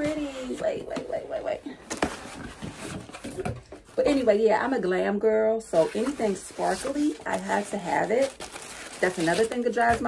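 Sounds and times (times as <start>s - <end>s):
cardboard and foam rustling: 1.8s - 4.6s, 5.7s - 10.0s.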